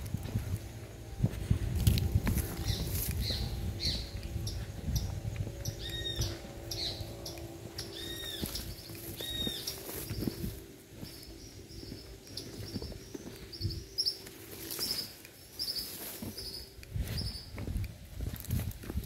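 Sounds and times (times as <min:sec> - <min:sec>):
footsteps through grass: 0:00.0 - 0:19.0
low steady hum: 0:00.0 - 0:19.0
bird calling: 0:02.6 - 0:17.5.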